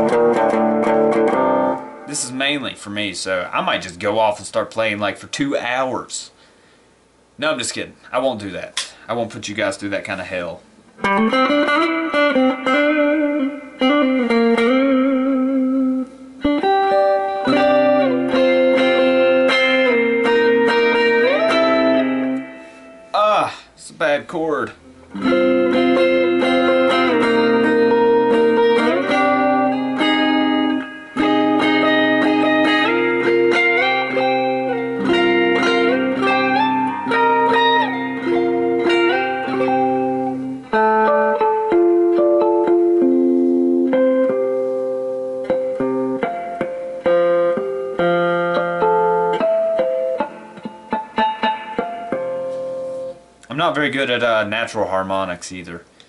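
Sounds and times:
electric guitar lead with vibrato: 0.0s - 2.3s, 11.0s - 23.2s, 24.8s - 53.4s.

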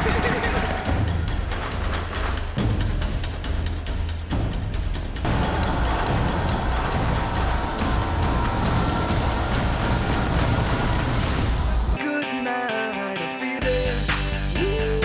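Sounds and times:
music with regular beat: 0.0s - 15.0s
fireworks bursting and crackling: 5.2s - 12.0s.

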